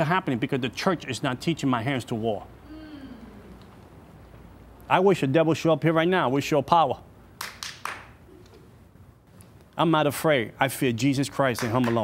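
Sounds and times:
hand claps: 7.4 - 8.2, 11.6 - 12.0.

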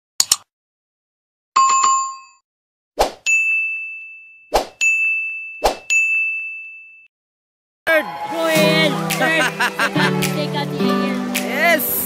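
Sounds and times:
bell ding: 3.3 - 7.1.

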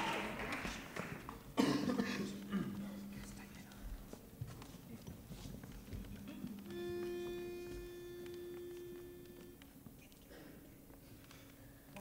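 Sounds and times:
faint shuffling: 1.3 - 12.0
pitch pipe note: 6.2 - 9.8.

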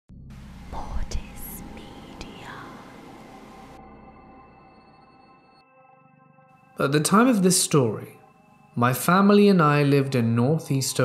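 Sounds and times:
drone: 0.1 - 6.5
whispered voice: 0.7 - 2.8.

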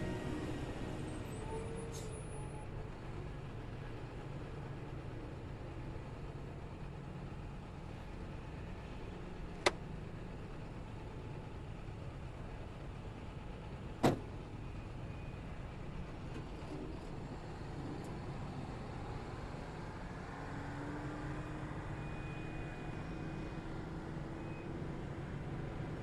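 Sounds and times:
car door slamming: 14.0 - 14.3.

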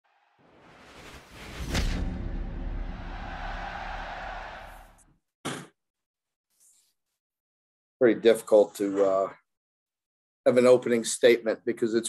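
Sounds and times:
whooshing drone: 0.1 - 5.0.

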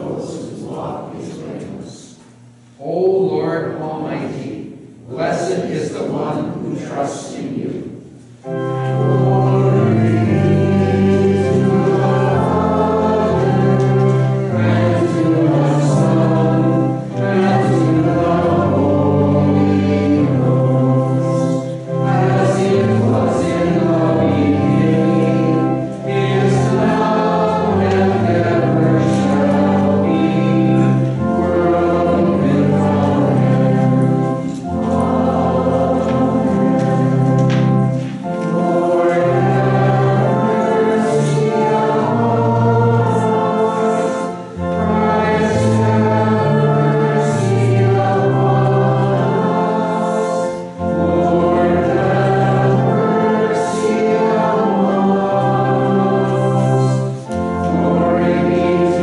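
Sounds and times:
congregation singing a hymn: 0.0 - 59.0.

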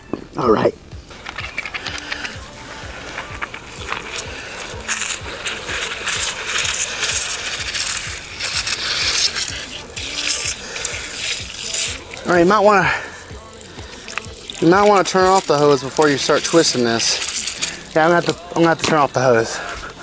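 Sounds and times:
hose water spraying and splashing: 1.0 - 20.0.

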